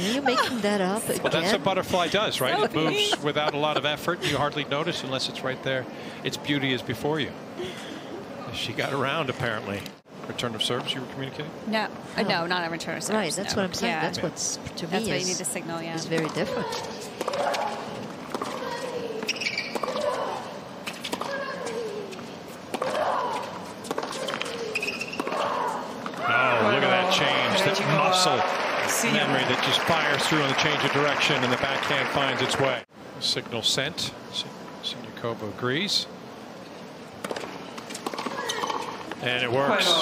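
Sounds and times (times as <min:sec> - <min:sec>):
tennis ball hit by racquets: 0:16.2 - 0:21.8, 0:22.7 - 0:26.2, 0:37.2 - 0:39.0
crowd cheering: 0:25.3 - 0:32.8.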